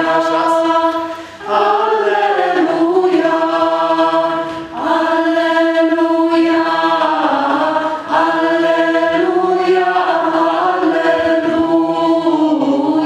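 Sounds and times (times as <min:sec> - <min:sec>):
choir singing sustained chords: 0:00.0 - 0:13.0.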